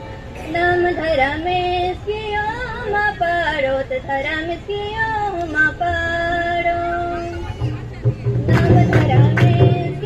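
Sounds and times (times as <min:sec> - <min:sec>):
women singing devotional song: 0:00.4 - 0:07.1, 0:08.4 - 0:10.0.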